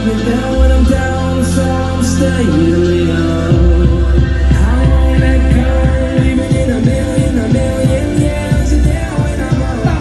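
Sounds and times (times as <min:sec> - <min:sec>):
live band music through pa: 0:00.0 - 0:10.0.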